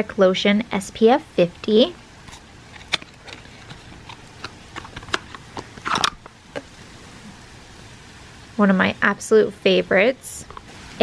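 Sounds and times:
tube rustling out of box: 0:02.2 - 0:06.3
box and tube clicks and taps: 0:02.8 - 0:06.3.

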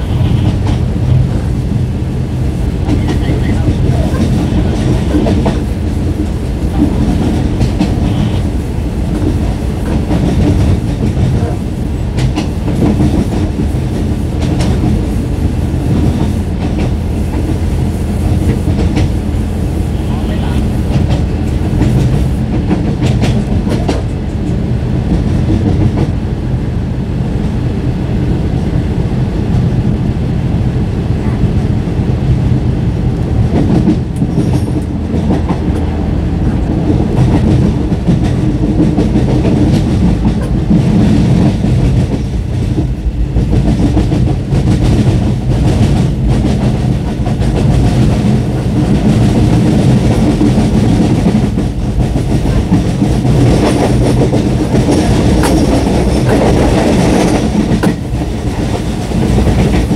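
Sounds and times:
rail joint clacks: 0:00.0 - 0:01.9, 0:02.7 - 0:19.4, 0:20.0 - 0:26.2, 0:33.4 - 0:59.9
train wheels rumbling on rails: 0:00.0 - 0:59.9.

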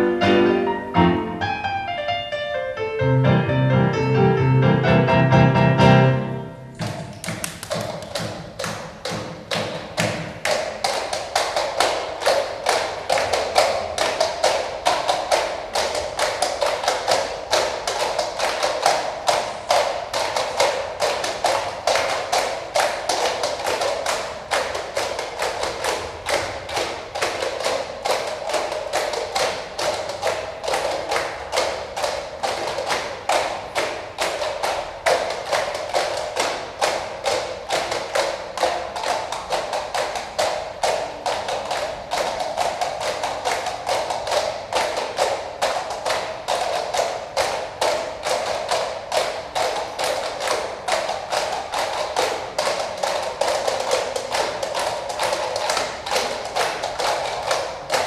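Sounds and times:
plastic cups knocked rhythmically: 0:06.7 - 0:58.0.

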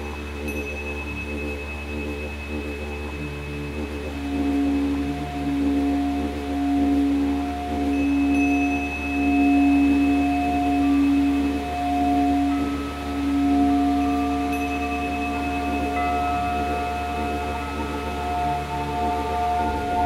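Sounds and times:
singing bowl humming: 0:00.0 - 0:20.0
higher ringing tones: 0:07.9 - 0:20.0.

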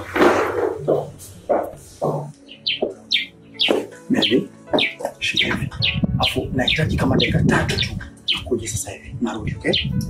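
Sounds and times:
background music with beat: 0:00.0 - 0:08.5
birds chirping: 0:00.8 - 0:10.0.

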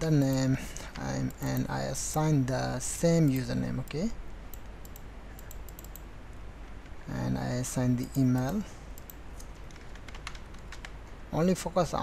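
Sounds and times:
computer keyboard typing: 0:04.5 - 0:06.1, 0:08.1 - 0:11.0.

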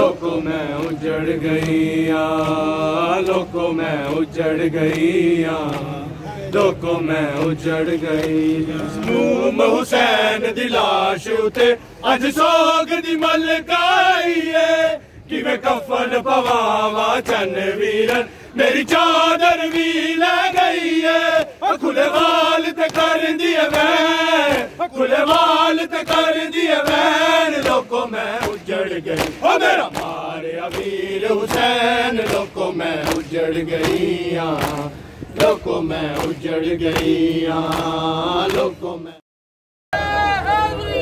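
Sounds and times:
men chanting a lament: 0:00.0 - 0:39.2.

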